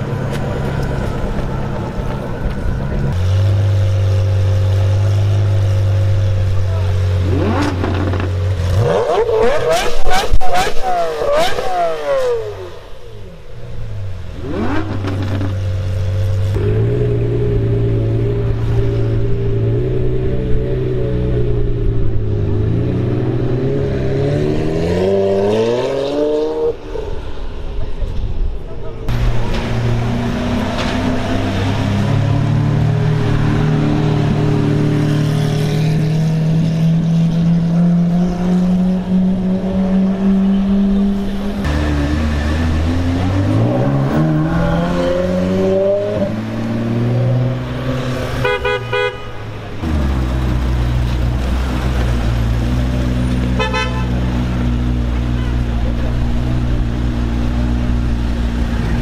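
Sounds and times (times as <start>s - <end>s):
sports car engine idling and revving: 0.0s - 59.0s
car engine pulling away: 29.1s - 48.4s.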